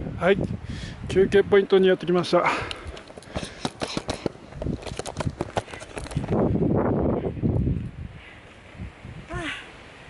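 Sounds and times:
rustling and rumbling on microphone: 2.8s - 9.3s.

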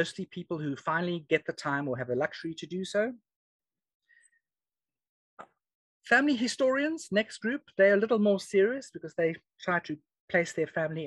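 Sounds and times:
speech: 0.0s - 3.3s, 6.1s - 11.0s.

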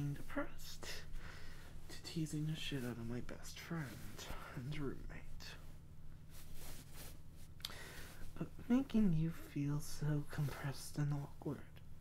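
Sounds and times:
man whispering: 0.0s - 1.1s, 1.9s - 5.7s
steady low hum: 0.0s - 12.0s
breathing close to microphone: 1.0s - 1.9s, 6.3s - 8.4s.

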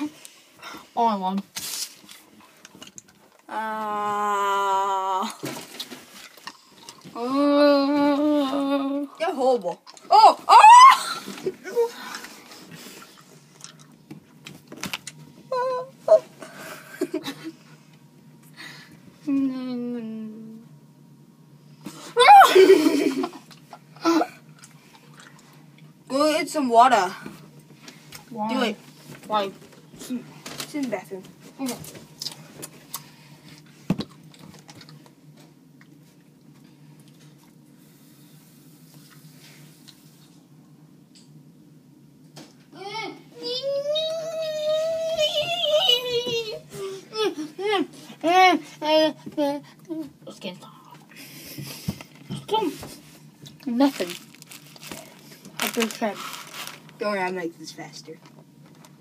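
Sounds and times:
faint low hum: 0.0s - 59.0s.

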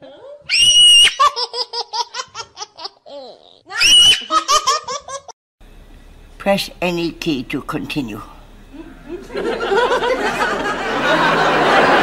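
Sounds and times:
child laughing hard: 0.5s - 5.4s.

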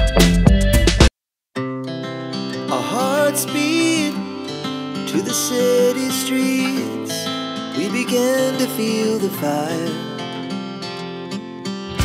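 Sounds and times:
person singing: 0.0s - 0.5s, 2.6s - 10.5s
heavy low beat: 0.0s - 1.0s
strummed acoustic guitar: 1.6s - 12.0s.

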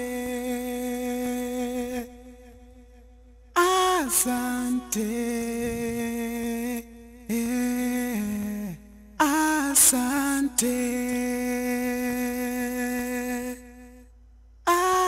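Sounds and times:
auto-tuned solo singing: 3.6s - 6.7s, 14.7s - 15.0s.

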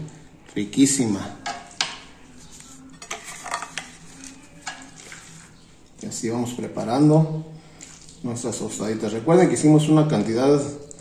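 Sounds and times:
spoon scraping and clinking on pot: 2.9s - 5.4s.

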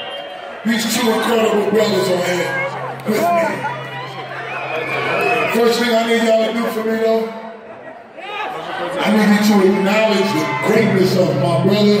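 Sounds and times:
man's voice over loudspeakers: 0.6s - 3.8s, 5.2s - 7.6s, 8.8s - 12.0s
backing music: 0.8s - 7.0s.

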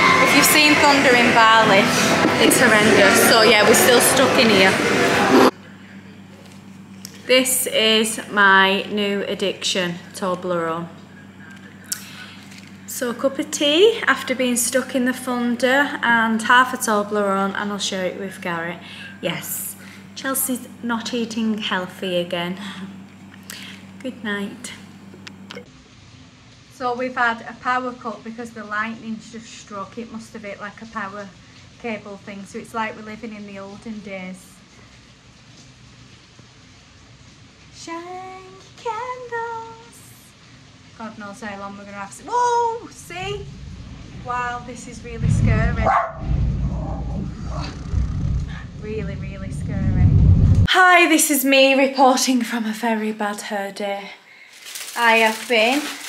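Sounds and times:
steady low hum: 0.0s - 25.7s, 37.8s - 51.4s
breath: 11.9s - 12.6s, 18.8s - 19.2s, 23.4s - 23.9s, 54.2s - 54.7s
heavy rain hissing: 39.4s - 50.6s.

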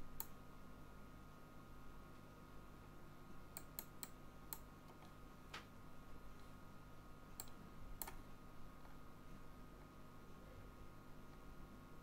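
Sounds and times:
low electrical hum: 0.0s - 12.0s
computer mouse clicks: 0.2s - 0.4s, 3.5s - 5.7s, 7.4s - 8.2s.

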